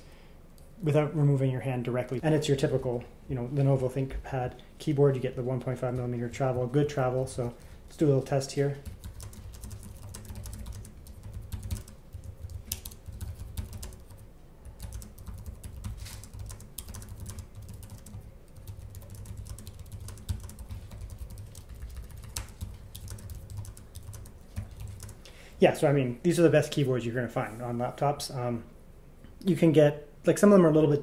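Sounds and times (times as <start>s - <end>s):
steady low hum: 0.0s - 31.0s
laptop keyboard typing: 8.8s - 25.3s.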